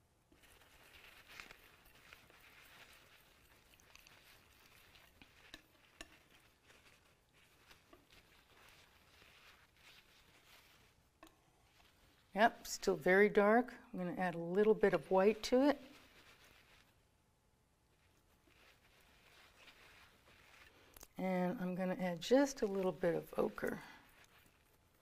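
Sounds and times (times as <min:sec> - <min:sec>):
palette knife scraping paint: 0:00.3 - 0:12.4.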